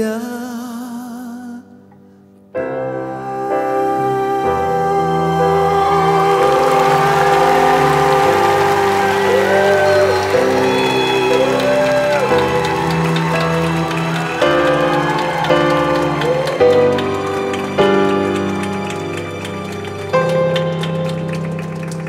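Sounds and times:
person singing: 0.0 - 2.0, 2.6 - 21.1
piano ballad with band: 2.5 - 22.0.

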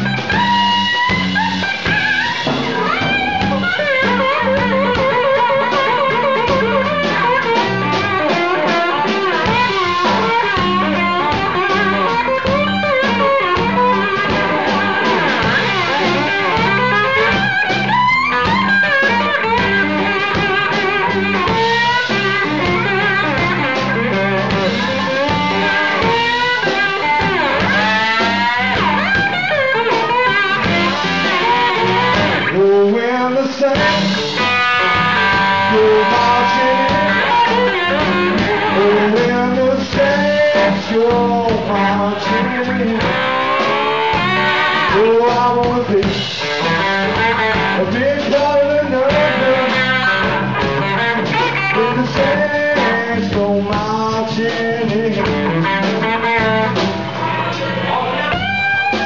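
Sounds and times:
bass: 0.0 - 59.0
drums: 0.0 - 59.0
electric guitar lead: 0.0 - 59.0.

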